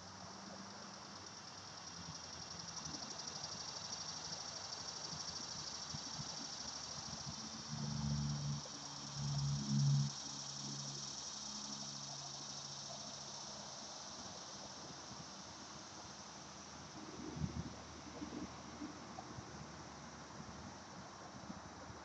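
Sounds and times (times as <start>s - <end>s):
insects chorus in trees: 0.0s - 21.9s.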